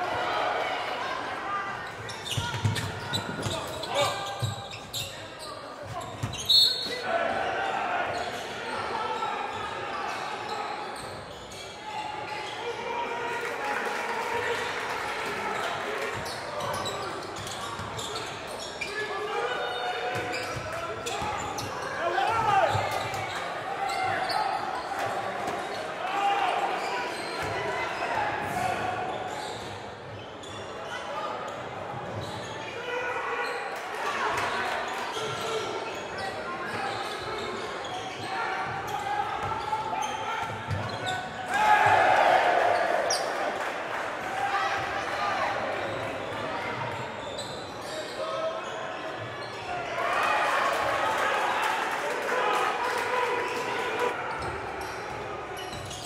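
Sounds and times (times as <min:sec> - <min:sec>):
spectator chatter and shouts: 0:00.0 - 0:56.0.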